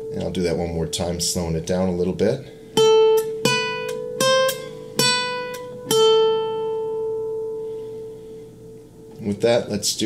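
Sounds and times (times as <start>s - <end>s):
classical guitar picked notes: 0.0s - 9.8s.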